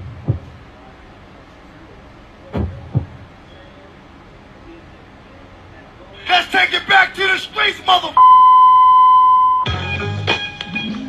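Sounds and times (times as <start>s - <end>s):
high electronic censor beep: 8.2s - 9.7s
music with bass line: 9.6s - 11.0s.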